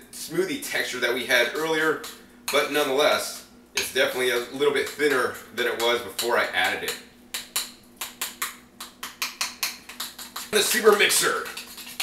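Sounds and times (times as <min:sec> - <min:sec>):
spoon scraping a bowl: 0:09.4 - 0:12.0.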